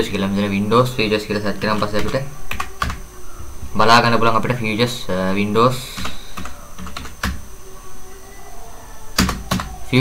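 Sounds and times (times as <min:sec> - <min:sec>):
keyboard keys clicking: 0:05.9 - 0:07.4, 0:09.2 - 0:09.8.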